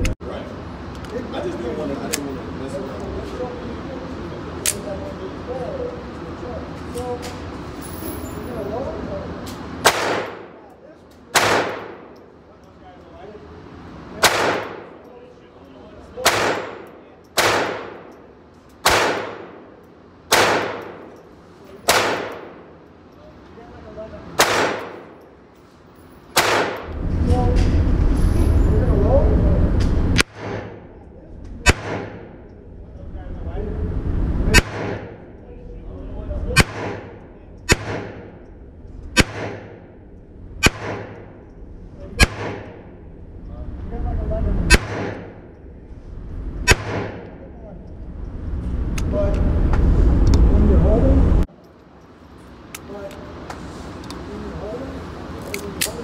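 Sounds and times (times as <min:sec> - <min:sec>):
pistol shots echoing indoors: 0:09.8 - 0:10.6, 0:11.3 - 0:12.2, 0:14.2 - 0:15.1, 0:16.2 - 0:21.2, 0:21.8 - 0:22.8, 0:24.4 - 0:25.2, 0:26.3 - 0:26.9, 0:31.6 - 0:32.3, 0:34.5 - 0:35.1, 0:36.6 - 0:38.4, 0:39.2 - 0:39.8, 0:40.6 - 0:41.4, 0:42.2 - 0:42.9, 0:44.7 - 0:45.4, 0:46.6 - 0:47.4
low rumble: 0:26.8 - 0:30.2, 0:37.0 - 0:51.5.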